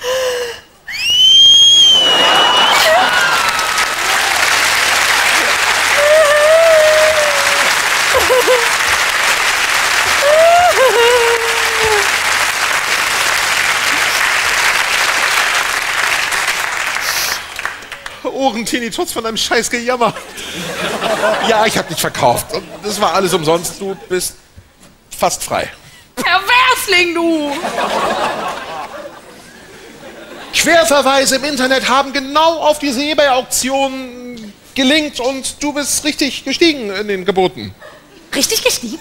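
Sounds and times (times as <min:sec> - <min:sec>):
audience applause: 0:01.6 - 0:18.3
woman wailing mock crying: 0:05.9 - 0:08.8, 0:10.2 - 0:12.2.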